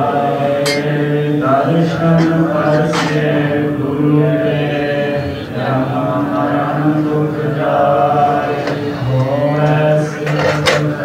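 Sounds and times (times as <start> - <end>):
man chanting slowly: 0.0 - 11.0.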